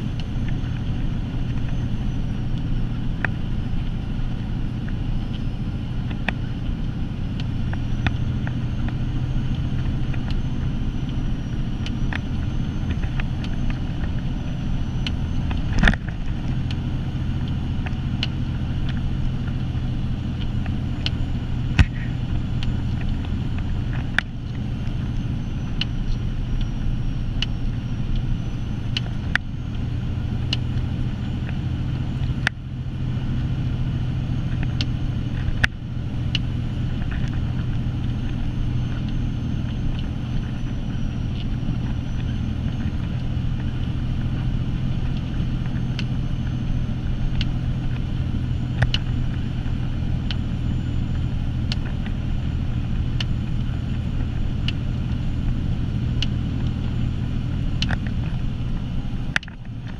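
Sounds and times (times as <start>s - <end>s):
truck diesel engine drone: 0.0s - 59.9s
sharp ticks and clicks: 7.3s - 52.3s, 53.0s - 59.9s.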